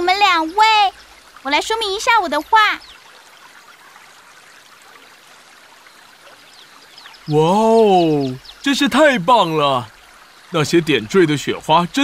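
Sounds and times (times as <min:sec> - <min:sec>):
faint babbling stream: 0:00.0 - 0:12.0.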